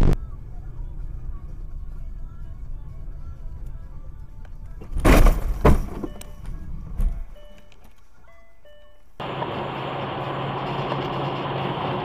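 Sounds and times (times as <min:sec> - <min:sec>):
vehicle engine and road noise: 0:00.0 - 0:12.0
vehicle crash: 0:04.8 - 0:06.2
bangs: 0:04.9 - 0:06.2.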